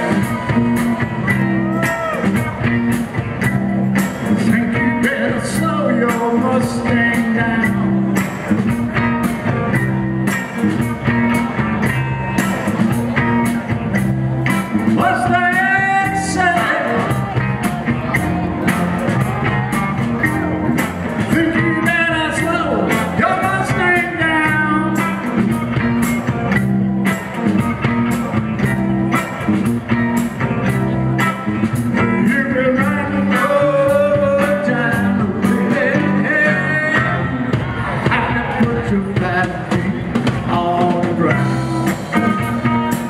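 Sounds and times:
live rock band playing: 0.0 - 43.0
lead singer singing: 4.2 - 8.4, 14.9 - 20.5, 21.1 - 25.8, 32.0 - 43.0.

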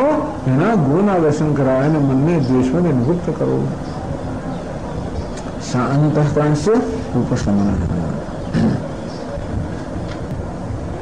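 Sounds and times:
low rumble and hiss: 0.0 - 11.0.

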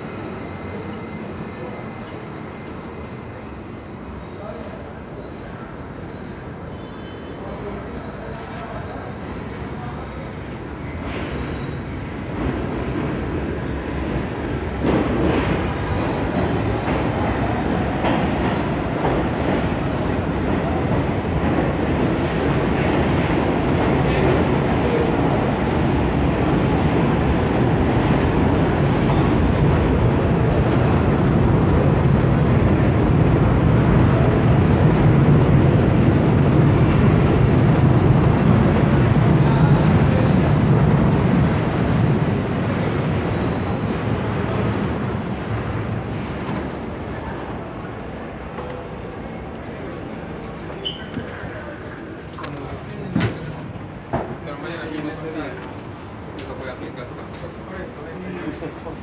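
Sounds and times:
subway train running: 0.0 - 59.0.

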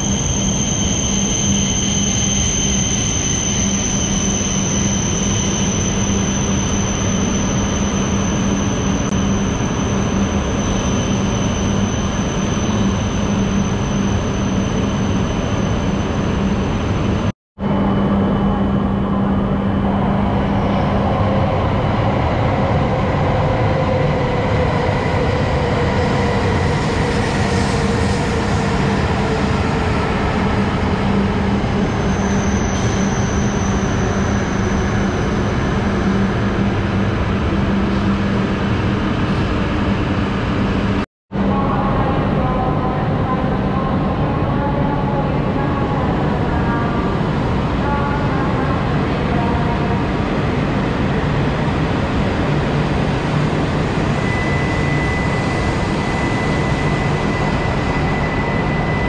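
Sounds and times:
train passing at speed: 0.0 - 59.0.

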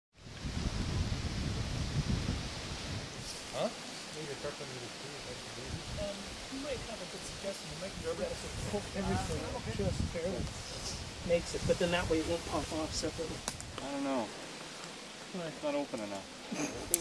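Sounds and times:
low rumbling: 0.2 - 14.6
steady hiss: 0.2 - 17.0
faint voices talking: 3.5 - 14.5.

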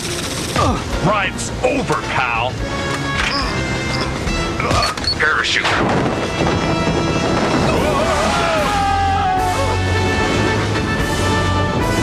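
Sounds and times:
cartoon action music: 4.5 - 12.0.

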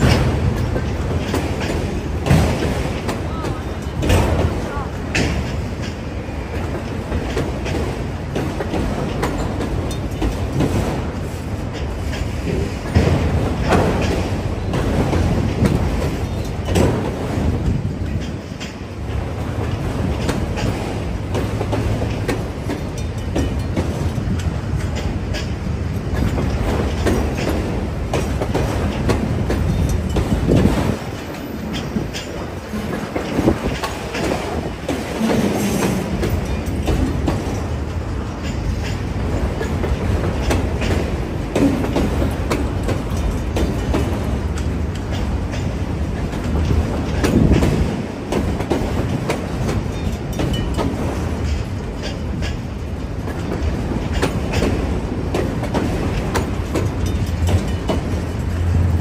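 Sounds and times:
freight train rumbling past: 0.0 - 59.0
steel wheels clicking over rail joints: 0.0 - 59.0.

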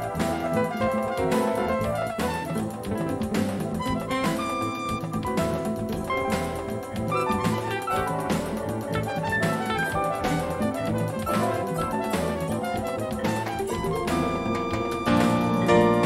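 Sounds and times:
electric guitar jazz: 0.0 - 16.0
jazz piano: 0.0 - 16.0.

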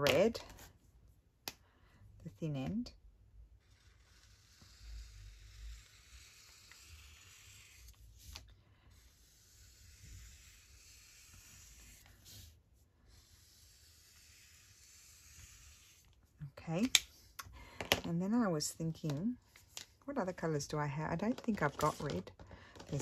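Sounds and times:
marker scratching on paper: 3.6 - 12.5, 13.1 - 16.1.

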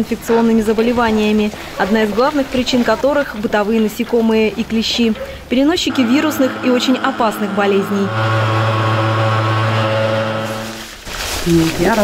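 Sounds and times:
fogging sprayer humming: 5.8 - 11.0.

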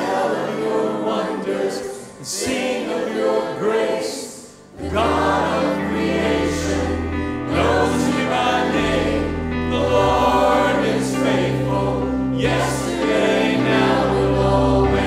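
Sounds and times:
choir singing worship song: 0.0 - 15.0.

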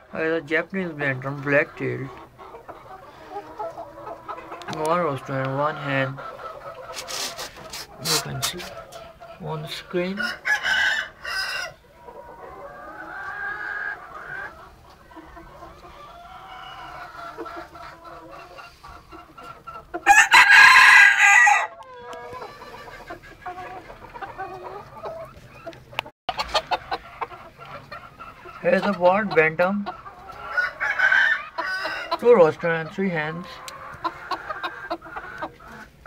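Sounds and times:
chickens clucking: 0.0 - 36.0
rooster crowing: 10.2 - 11.8, 20.0 - 21.9, 30.5 - 32.1.

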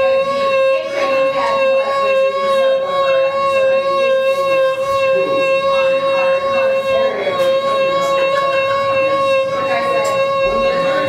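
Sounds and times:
violin long bowed note: 0.0 - 11.0.

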